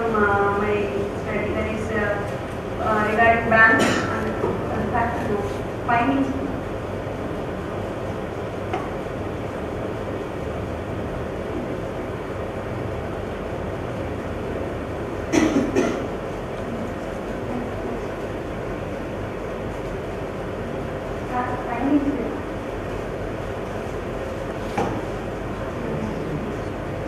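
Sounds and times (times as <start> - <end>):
room rumble: 0.0 - 27.0.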